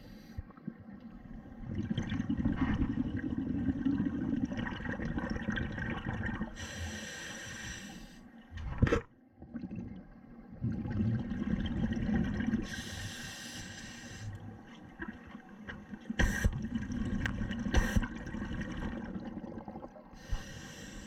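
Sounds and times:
exhaled bubbles rumbling: 0.4s - 6.6s, 8.6s - 12.8s, 14.4s - 20.4s
regulator inhalation hiss: 6.6s - 8.2s, 12.7s - 14.4s, 20.2s - 21.0s.

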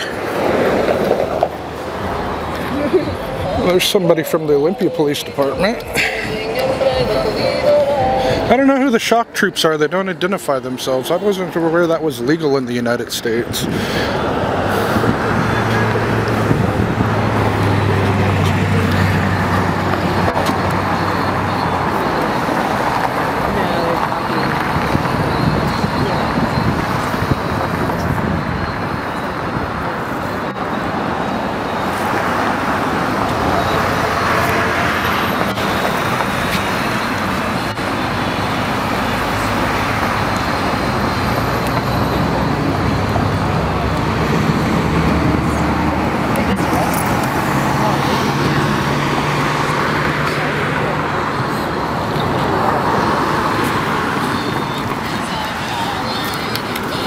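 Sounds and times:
indistinct voices: 0.0s - 57.0s
road traffic: 0.0s - 57.0s.

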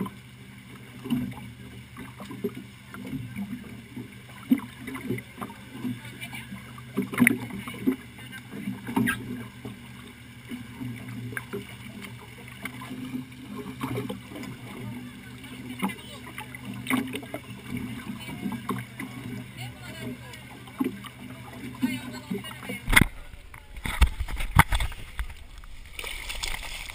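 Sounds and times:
boat engine humming: 0.0s - 26.9s.

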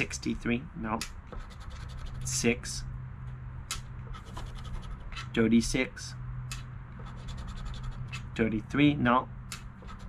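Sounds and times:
coin scraping scratch-off ticket: 1.4s - 2.5s, 4.1s - 5.4s, 7.0s - 8.4s.

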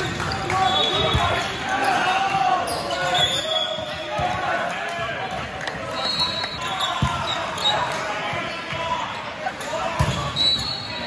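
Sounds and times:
sneakers squeaking on gym floor: 0.0s - 4.2s, 5.9s - 8.6s, 10.0s - 11.0s.

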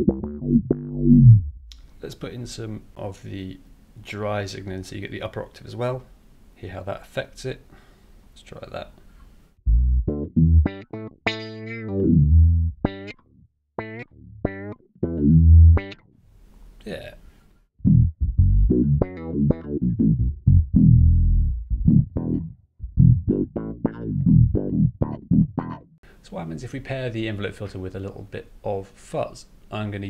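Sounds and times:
electric bass riff with wah sweeps: 0.0s - 1.8s, 9.7s - 13.2s, 13.8s - 16.0s, 17.8s - 26.0s.

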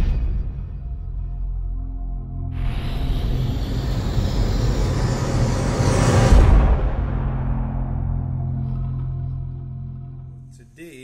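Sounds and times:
low sustained drone: 0.9s - 10.3s
rushing whoosh effect: 2.6s - 8.5s.

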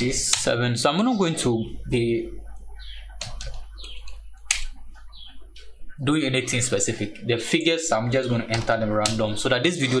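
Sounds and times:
computer keyboard keys clicking: 3.2s - 4.7s, 8.5s - 9.2s.

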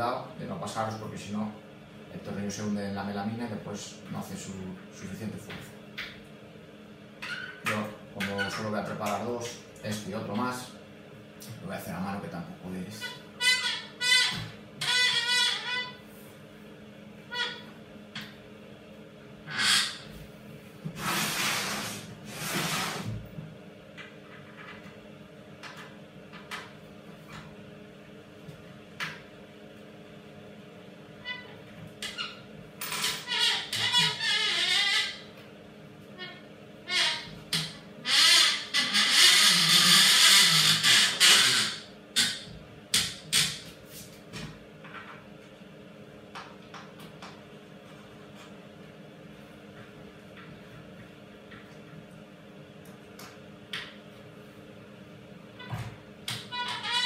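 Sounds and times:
steady low hum: 0.0s - 39.9s.

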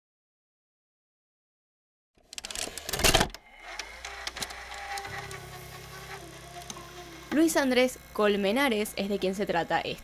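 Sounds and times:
tape recorder mechanical whir: 2.3s - 10.0s
held tones: 3.4s - 10.0s
low hum: 3.6s - 10.0s.

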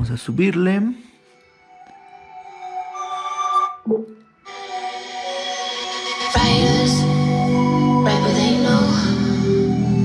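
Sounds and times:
music from portable speaker: 2.9s - 10.0s.

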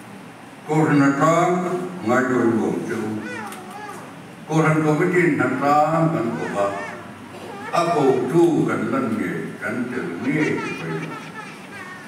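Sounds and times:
man speaking in a hall: 0.6s - 3.4s, 4.4s - 11.4s.

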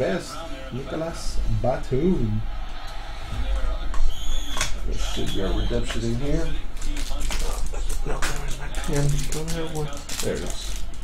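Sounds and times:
cards being handled: 6.7s - 11.0s.

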